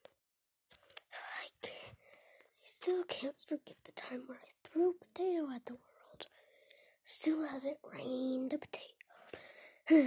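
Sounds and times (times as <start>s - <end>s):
child whispering: 1.0s - 2.0s, 2.6s - 6.4s, 7.1s - 10.0s.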